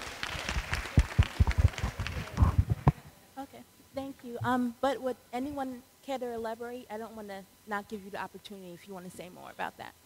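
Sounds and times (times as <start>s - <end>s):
scattered hand clapping: 0.0s - 3.0s.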